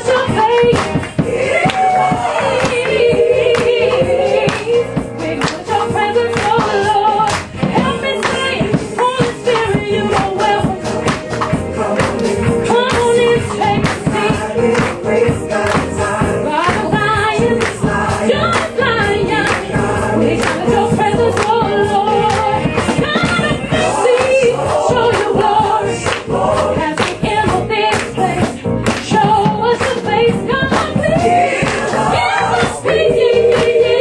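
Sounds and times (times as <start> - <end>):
accompaniment with steady beat: 0.0 - 34.0
voices singing a church song: 0.0 - 34.0
hand claps: 0.6 - 4.8, 5.4 - 17.9, 18.5 - 19.8, 20.4 - 25.3, 26.0 - 30.1, 30.7 - 33.8.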